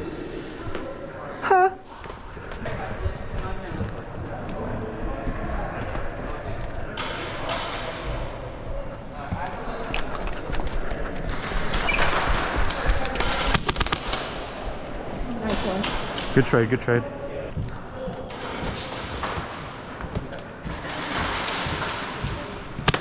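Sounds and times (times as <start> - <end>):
airsoft guns firing: 12.2 - 14.6
pellets striking targets: 12.7 - 14.6, 22.8 - 23.0.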